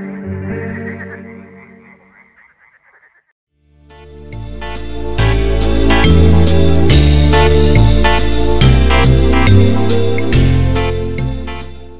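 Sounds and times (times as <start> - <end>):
frogs croaking: 0.0 - 3.4.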